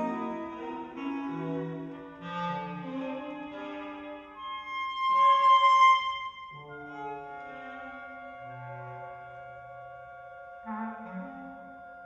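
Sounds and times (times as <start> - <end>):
chamber ensemble music: 0.0 - 12.0.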